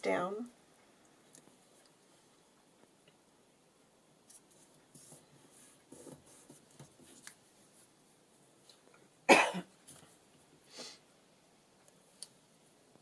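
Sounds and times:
person coughing: 9.3 - 9.7.

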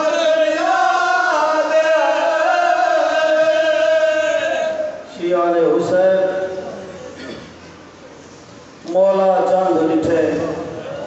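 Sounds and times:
men chanting in chorus: 0.0 - 5.9.

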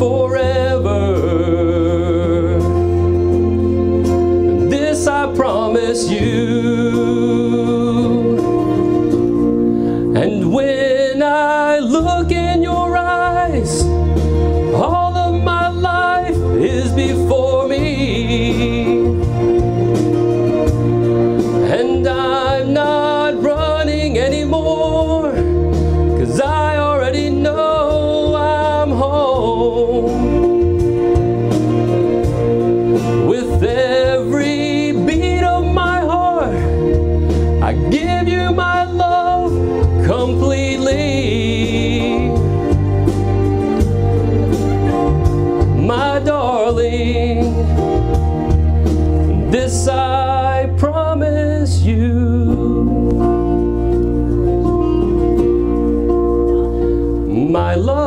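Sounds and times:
man singing into a microphone: 0.0 - 3.6, 4.5 - 19.8, 21.5 - 31.2, 33.1 - 42.8, 44.9 - 48.3, 49.3 - 53.9, 56.7 - 58.0
instrumental accompaniment: 0.0 - 58.0.

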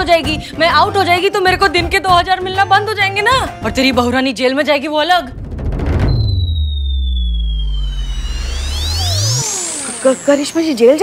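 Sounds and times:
deep sustained drone: 6.1 - 11.0
synthesized upward glides: 6.1 - 11.0
thin high falling tone: 6.1 - 11.0.

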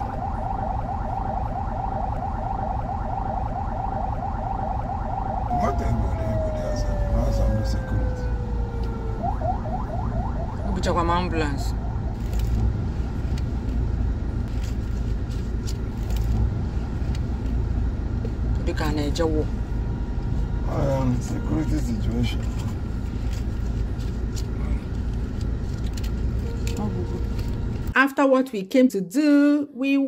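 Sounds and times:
car engine rumble inside cabin: 0.0 - 28.0.

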